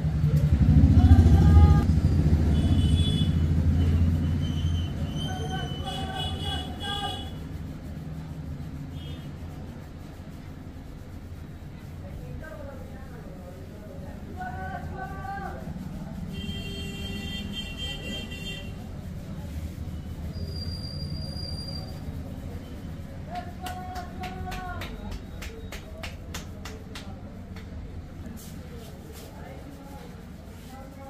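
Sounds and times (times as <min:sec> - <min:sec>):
traffic rumble: 0:00.0 - 0:31.0.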